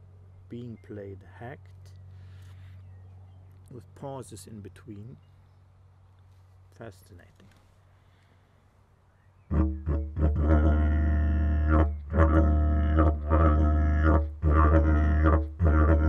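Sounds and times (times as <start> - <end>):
didgeridoo droning: 9.5 - 16.0.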